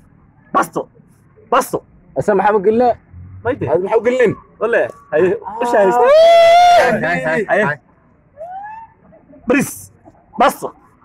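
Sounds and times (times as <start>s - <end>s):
young men shouting: 5.2s - 7.8s.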